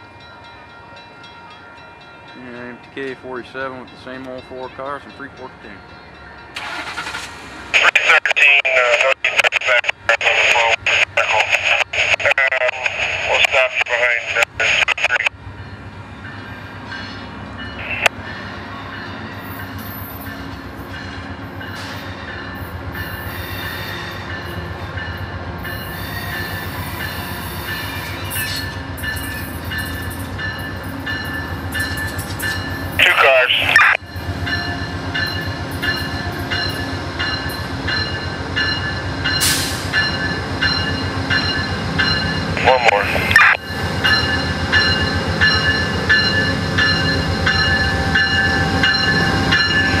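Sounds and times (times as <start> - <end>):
diesel locomotive rumbling: 2.0 - 50.0
loud amplified voice: 7.8 - 15.3, 33.0 - 34.0, 42.6 - 43.6.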